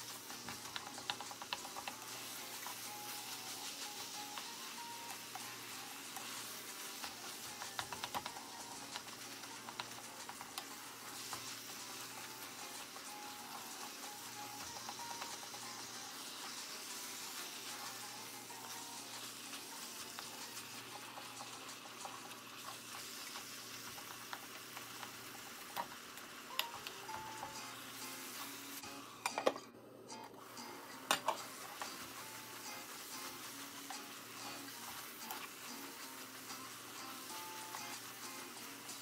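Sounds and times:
meat sizzling in a pot: 0.0 - 39.0.

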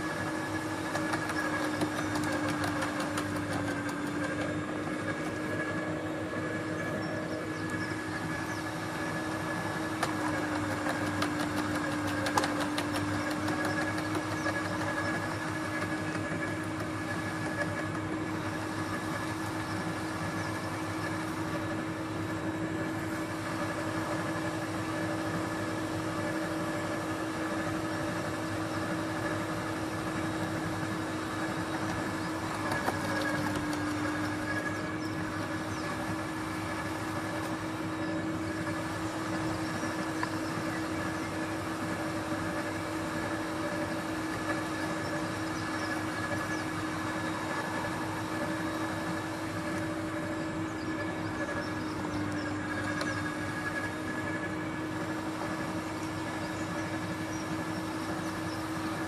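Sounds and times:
garden shredder humming: 0.0 - 59.0.

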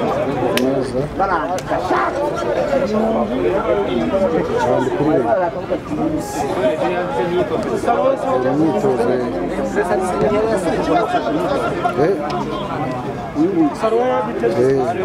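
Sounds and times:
people talking overlapping chatter: 0.0 - 15.0.

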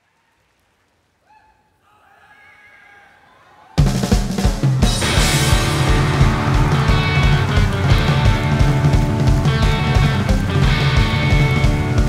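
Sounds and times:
audience cheering: 1.2 - 12.0
rock band playing: 3.8 - 12.0.

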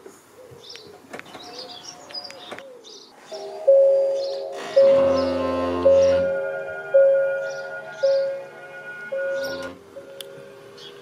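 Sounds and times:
pigeon cooing: 0.2 - 6.4
small birds chirping: 0.4 - 6.4, 9.2 - 11.0
music with chiming notes: 3.4 - 10.2.

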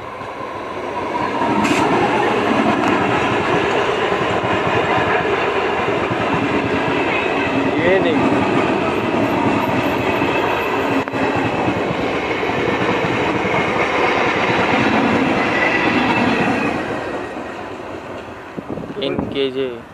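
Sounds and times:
train wheels rushing on rails: 0.0 - 19.9.

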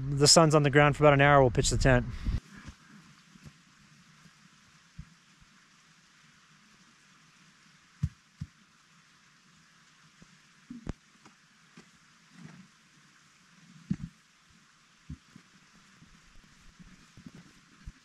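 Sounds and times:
low steady hiss: 0.0 - 18.0.

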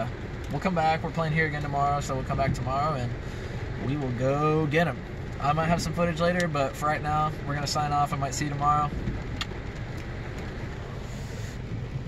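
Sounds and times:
car cabin rumble and hiss: 0.0 - 12.0.

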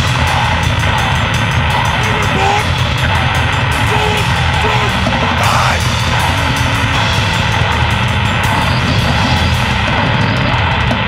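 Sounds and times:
distorted guitar and bass: 0.0 - 11.0
fast drums: 0.0 - 11.0.

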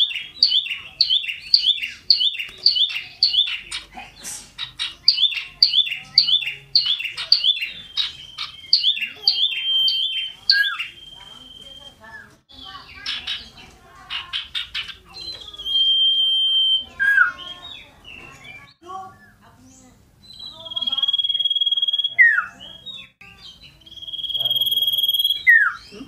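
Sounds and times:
bird whistling song: 0.0 - 3.8, 4.6 - 13.6, 14.3 - 19.4, 20.2 - 26.0
bird chattering: 0.0 - 26.0
wings fluttering: 2.0 - 5.0.

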